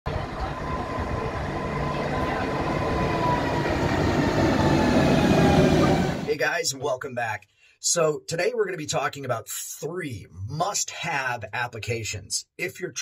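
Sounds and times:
whining tones: 0:00.1 - 0:06.3
electric train rumbling: 0:00.1 - 0:06.4.

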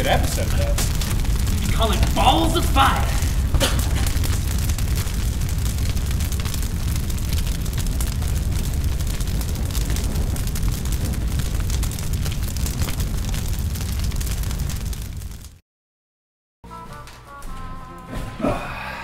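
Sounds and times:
fire rumbling and crackling: 0:00.0 - 0:15.6, 0:16.8 - 0:19.0.

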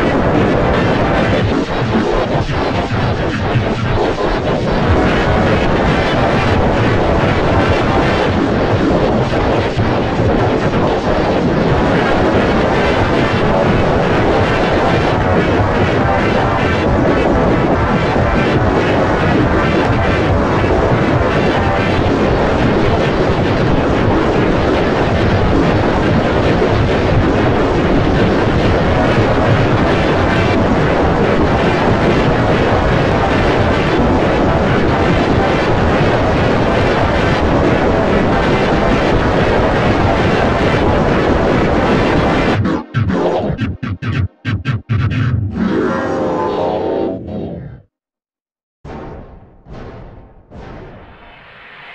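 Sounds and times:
distorted electronic noise: 0:38.7 - 0:47.9
dense processed roar: 0:40.4 - 0:48.0.

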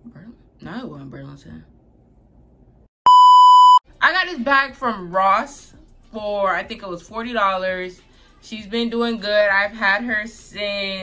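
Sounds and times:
electronic censor bleep: 0:03.1 - 0:03.8.

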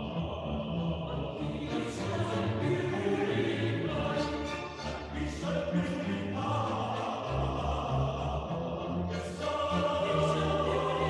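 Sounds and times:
choir singing sustained notes: 0:00.0 - 0:11.0.

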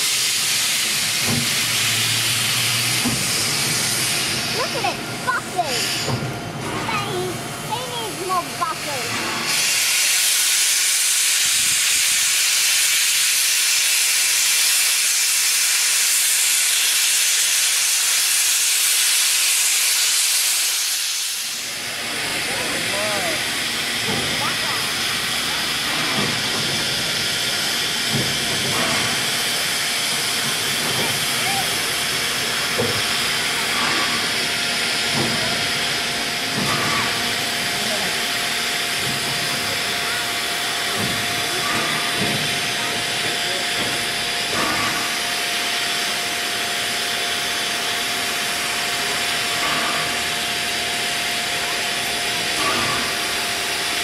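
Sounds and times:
steam locomotive venting steam: 0:00.0 - 0:54.0
soft steam hiss: 0:08.2 - 0:36.0.

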